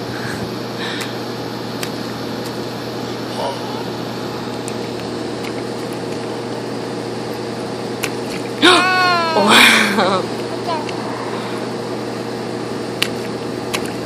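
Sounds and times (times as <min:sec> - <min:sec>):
low mechanical hum: 0:00.0 - 0:14.0
high-pitched voice: 0:10.5 - 0:11.0.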